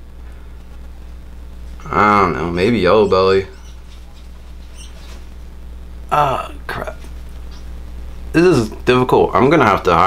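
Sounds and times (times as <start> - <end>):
steady low hum: 0.0 - 10.0
gloved fingers squeaking and rubbing: 3.0 - 5.4
short high squeaks: 3.5 - 5.3.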